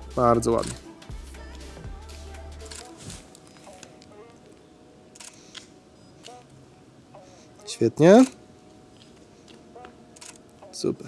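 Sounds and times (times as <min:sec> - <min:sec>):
camera shutter clicking: 0:02.6 - 0:03.0, 0:05.2 - 0:06.5, 0:10.2 - 0:10.4.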